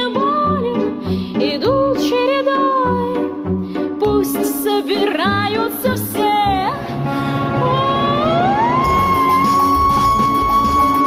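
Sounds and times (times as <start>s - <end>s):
woman singing operatically: 0.0s - 3.4s, 4.0s - 6.8s, 7.6s - 11.0s
backing music: 0.0s - 11.0s.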